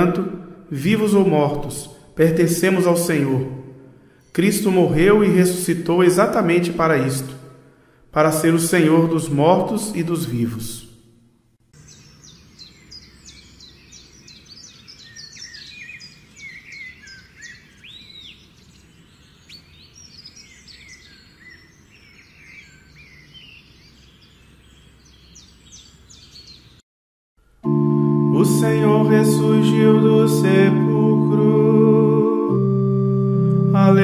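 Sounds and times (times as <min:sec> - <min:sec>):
birds chirping and singing: 0:11.8 - 0:26.8
guitar music: 0:27.6 - 0:34.0.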